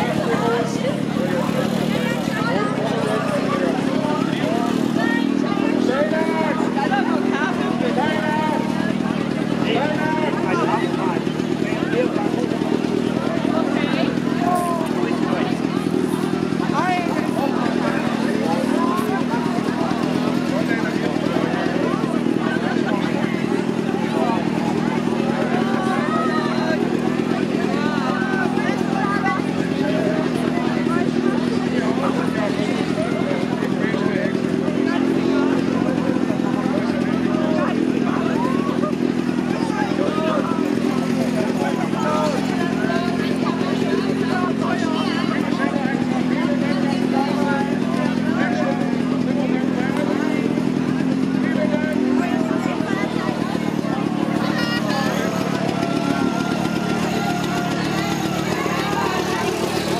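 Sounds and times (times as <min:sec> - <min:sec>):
crowd voices and shouts: 0:00.0 - 0:59.9
small motor idling: 0:00.0 - 0:59.9.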